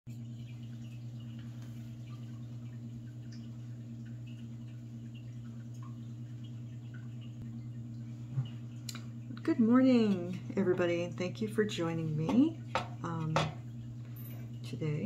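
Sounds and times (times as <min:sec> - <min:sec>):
steady low hum: 0:00.1 - 0:15.0.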